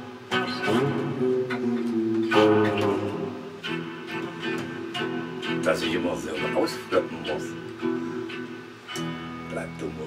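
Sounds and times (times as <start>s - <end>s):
electric guitar: 0.0s - 10.0s
man singing: 0.4s - 3.4s.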